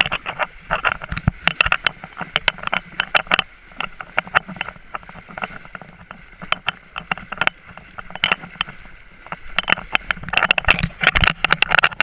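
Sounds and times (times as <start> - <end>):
horses splashing through water: 0.0 - 12.0.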